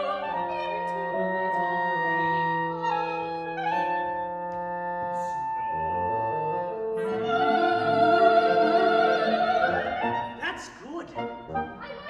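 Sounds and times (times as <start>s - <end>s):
classical instrumental music: 0.0s - 12.0s.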